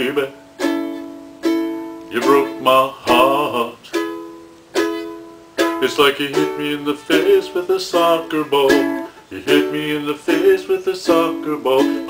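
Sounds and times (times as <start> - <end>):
ukulele strummed in chords: 0.0 - 12.0.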